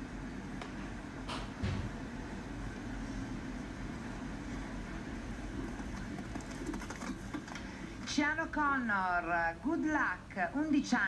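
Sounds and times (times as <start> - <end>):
arena ambience rumble from tv: 0.0 - 11.0.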